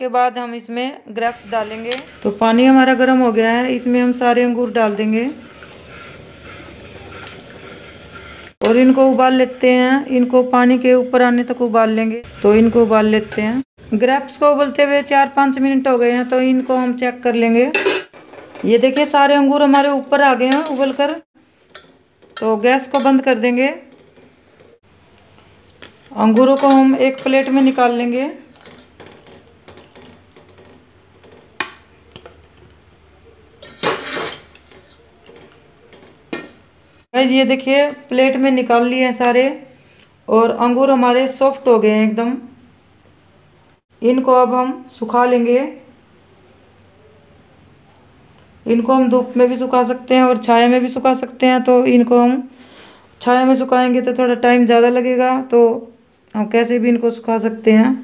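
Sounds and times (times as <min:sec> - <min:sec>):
metal skimmer scraping a pot: 0:04.8 - 0:08.6, 0:33.6 - 0:35.1.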